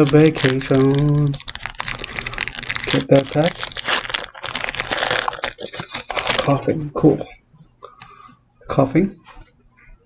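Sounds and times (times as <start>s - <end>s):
foil wrapper crinkling: 0.0s - 6.8s.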